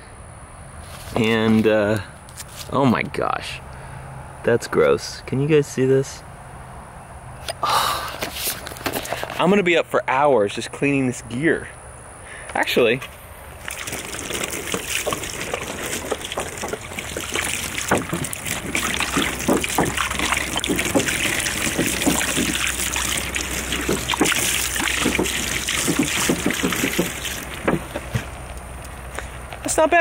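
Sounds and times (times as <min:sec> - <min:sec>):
water splashing and trickling: 0:13.6 - 0:30.0.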